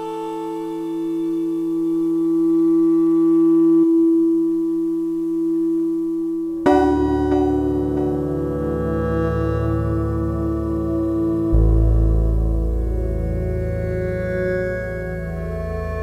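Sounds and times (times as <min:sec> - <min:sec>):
ambient synthesizer music: 0:00.0 - 0:16.0.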